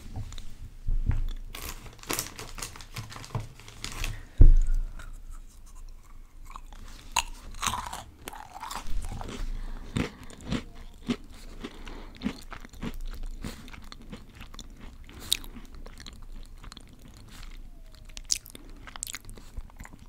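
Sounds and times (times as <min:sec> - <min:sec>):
heavy low thump: 0:04.3 - 0:05.0
chewing crunchy snack: 0:04.9 - 0:20.0.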